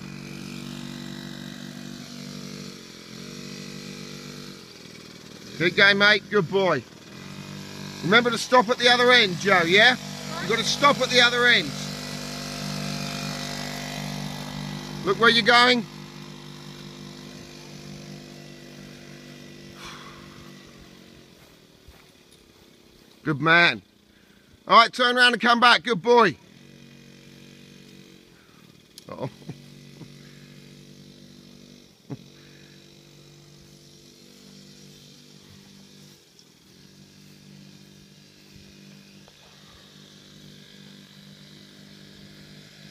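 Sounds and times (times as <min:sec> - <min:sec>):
dirt bike engine running: 0:00.0 - 0:42.9.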